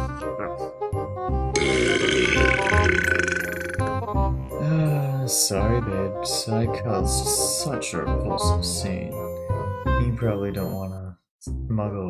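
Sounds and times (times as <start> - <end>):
light background music: 0.0 - 12.0
long burp: 1.6 - 4.0.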